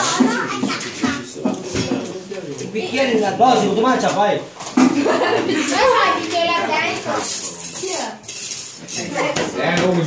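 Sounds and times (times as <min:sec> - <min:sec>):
cutlery clinking on dishes: 0:06.9 - 0:10.0.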